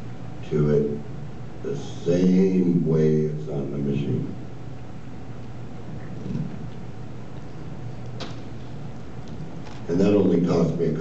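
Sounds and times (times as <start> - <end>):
low hum of hall: 0.0 - 11.0.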